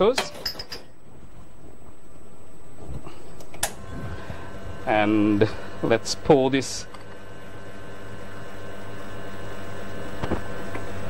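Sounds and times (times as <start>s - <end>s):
espresso machine pump humming: 3.0s - 11.0s.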